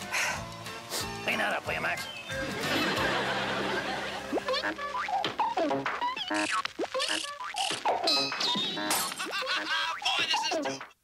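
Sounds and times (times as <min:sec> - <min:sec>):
springy boings: 0:04.3 - 0:10.9.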